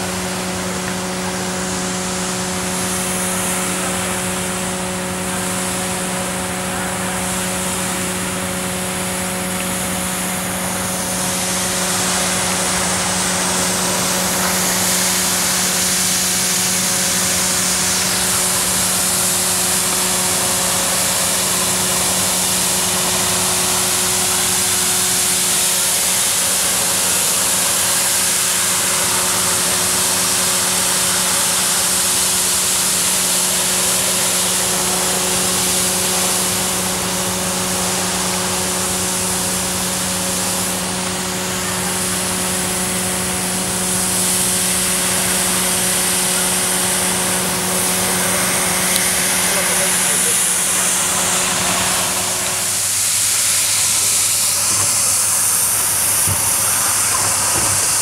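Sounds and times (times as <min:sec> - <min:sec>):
broad hiss: 0:00.0 - 0:58.0
floor scrubber motors humming: 0:00.0 - 0:58.0.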